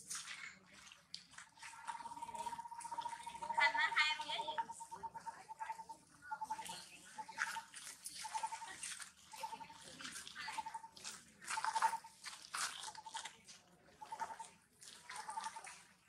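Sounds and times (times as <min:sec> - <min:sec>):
monkey chewing with crunches: 0:07.8 - 0:13.4.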